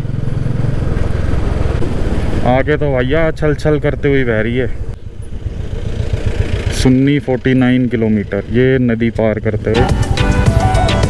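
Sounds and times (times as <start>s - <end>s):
road and wind noise: 0.0s - 10.8s
motorcycle engine running: 0.0s - 11.0s.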